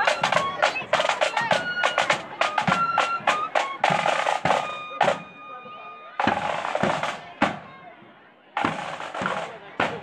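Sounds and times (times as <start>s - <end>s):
marching band drums: 0.0s - 10.0s.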